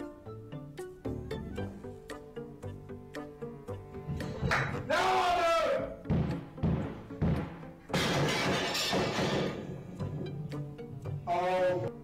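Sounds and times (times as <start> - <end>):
music with low beats: 0.0 - 4.9, 6.0 - 11.3
loud shattering crash: 7.9 - 9.8.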